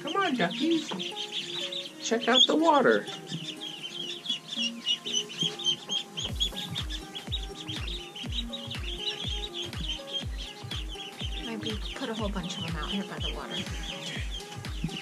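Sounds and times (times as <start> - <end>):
background music: 0.0 - 15.0
ducklings peeping: 0.0 - 15.0
bass beat: 6.2 - 15.0.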